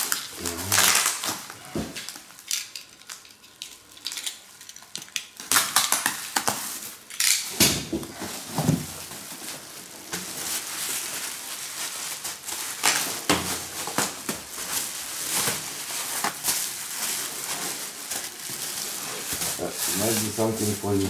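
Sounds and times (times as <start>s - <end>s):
bubble wrap rustling: 0.0s - 21.0s.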